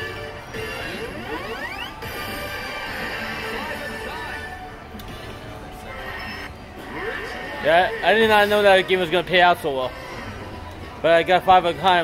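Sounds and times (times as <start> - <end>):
rising electronic tones: 0.0 - 4.5
slot machine game music and effects: 0.0 - 12.0.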